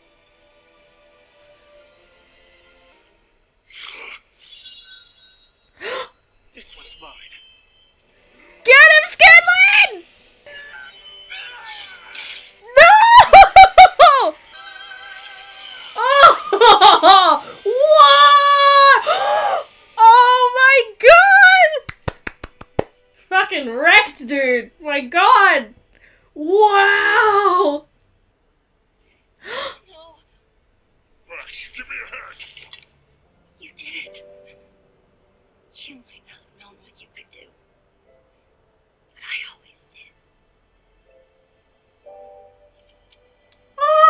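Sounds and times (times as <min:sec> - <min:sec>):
woman squealing and giggling: 0:12.7 - 0:18.2.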